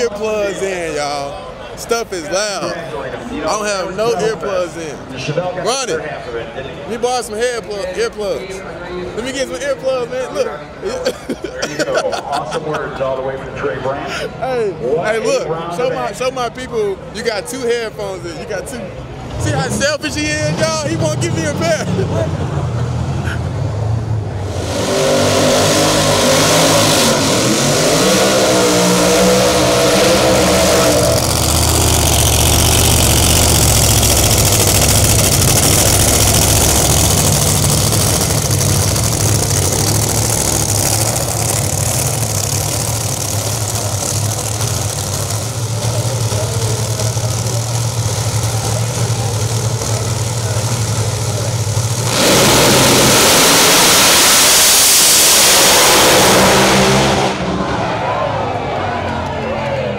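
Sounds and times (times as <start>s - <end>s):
engines rumbling low: 0.0s - 59.9s
race car engines revving: 0.0s - 59.9s
full-throttle race car launch: 18.9s - 59.6s.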